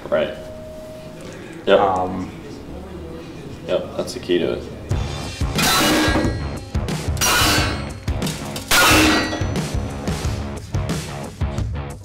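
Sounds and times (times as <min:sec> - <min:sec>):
background music: 0:03.0 - 0:12.0
loud metallic clangs: 0:05.4 - 0:10.0.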